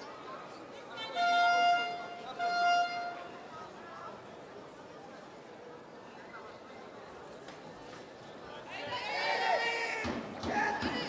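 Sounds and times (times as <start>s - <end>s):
arena crowd chatter: 0.0s - 11.0s.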